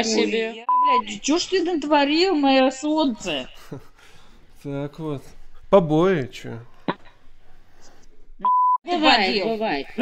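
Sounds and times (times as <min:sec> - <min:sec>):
faint room noise: 0:00.0 - 0:10.0
censor bleep: 0:00.7 - 0:01.0, 0:08.4 - 0:08.8.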